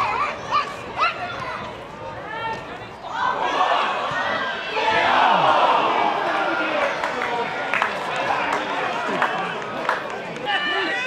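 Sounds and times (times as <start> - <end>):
players and crowd shouting: 0.0 - 11.0.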